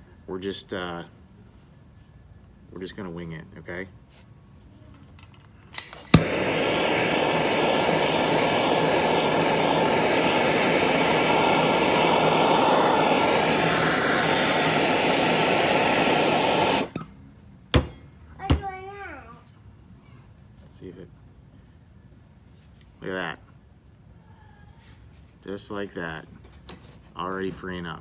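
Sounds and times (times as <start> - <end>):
gas torch hissing: 5.8 - 17.1
torch igniter click: 5.8 - 17.1.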